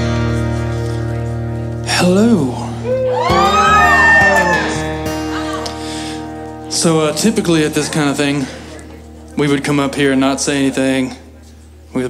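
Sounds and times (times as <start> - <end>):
acoustic guitar chord ringing: 0.0 - 11.1.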